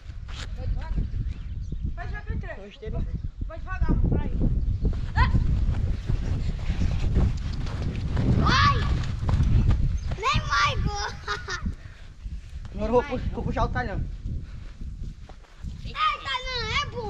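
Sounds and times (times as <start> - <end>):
wind on microphone: 0.0 - 17.0
feet dragging through sand: 4.4 - 10.5, 11.8 - 16.2
boys yelling: 5.2 - 5.5, 8.3 - 9.2, 10.1 - 11.7, 15.9 - 17.0.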